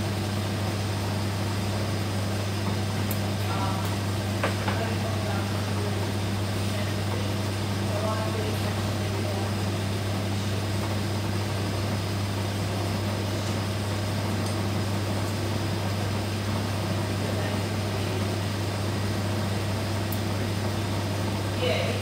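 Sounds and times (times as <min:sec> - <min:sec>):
machine hum: 0:00.0 - 0:22.0.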